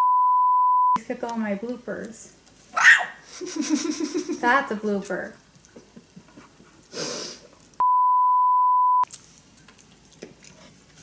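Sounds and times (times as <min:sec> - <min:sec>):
censor bleep: 0:00.0 - 0:01.0, 0:07.8 - 0:09.1.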